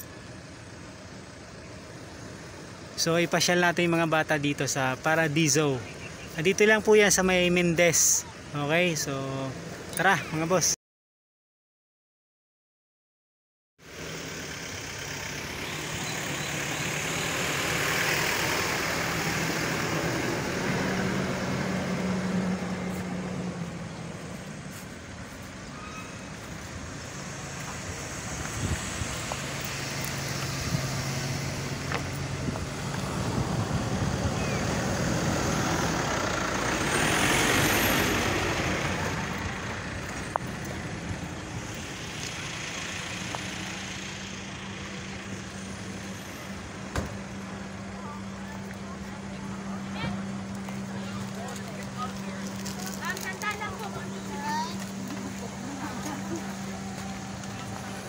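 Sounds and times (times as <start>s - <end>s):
low engine hum: 0.0s - 3.0s, 13.8s - 58.0s
road vehicles passing: 0.0s - 10.8s, 13.8s - 58.0s.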